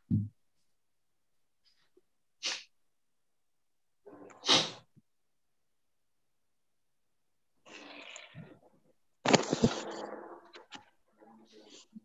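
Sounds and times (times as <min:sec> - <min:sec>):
person sneezing: 0:02.4 - 0:02.7, 0:04.4 - 0:04.8.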